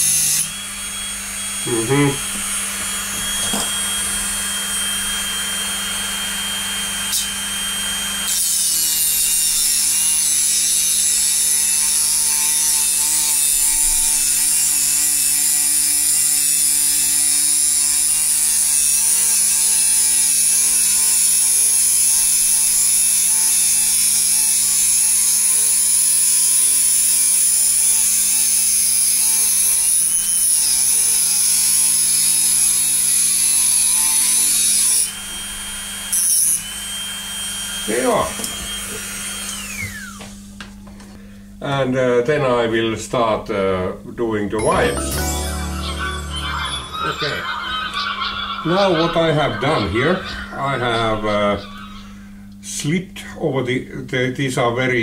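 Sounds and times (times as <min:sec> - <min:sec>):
rotary tool cutting metal: 0:00.0 - 0:00.7, 0:07.0 - 0:40.2.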